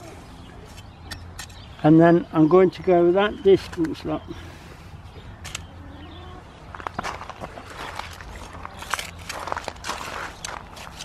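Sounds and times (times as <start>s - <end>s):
trowel scraping soil and stones: 7.6s - 11.0s.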